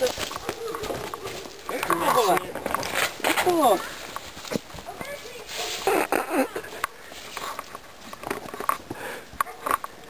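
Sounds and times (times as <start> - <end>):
branches brushing past: 0.0 - 8.9
loud rustle: 0.0 - 8.9
footsteps on forest floor: 0.0 - 10.0.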